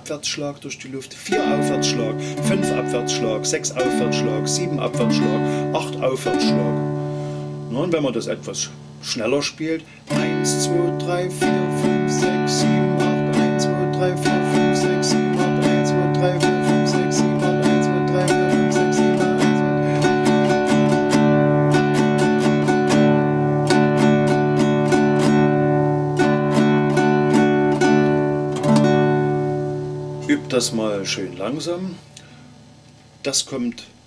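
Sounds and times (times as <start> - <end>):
nylon-string guitar strummed: 1.2 - 32.9.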